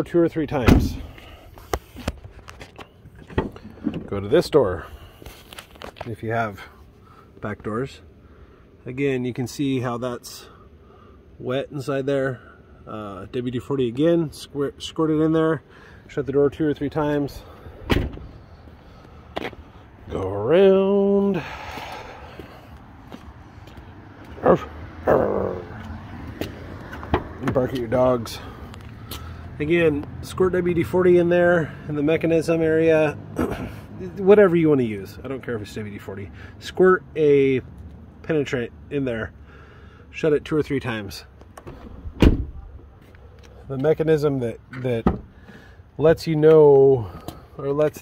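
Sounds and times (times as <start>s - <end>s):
truck door clicks and knocks: 0.6s - 1.0s, 17.9s - 18.3s, 27.0s - 27.6s, 41.6s - 42.7s, 45.0s - 45.3s.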